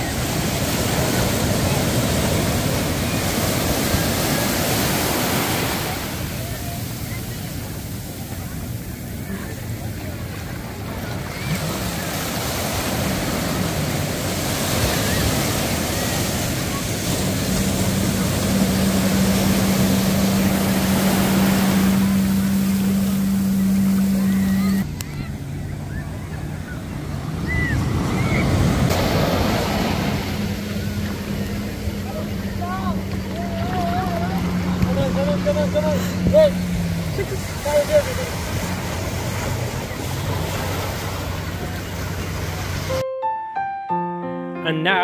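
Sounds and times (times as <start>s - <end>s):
surf breaking on beach: 0.0s - 43.0s
jet ski engine humming: 0.0s - 45.0s.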